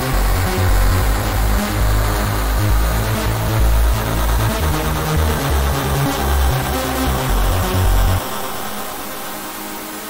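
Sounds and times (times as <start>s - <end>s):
heavy synth bass line: 0.0s - 9.6s.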